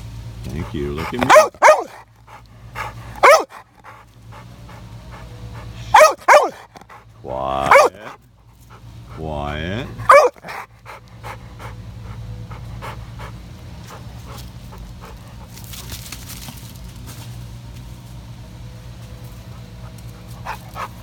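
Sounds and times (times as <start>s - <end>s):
dog panting hard: 0.4s - 15.6s, 19.5s - 21.0s.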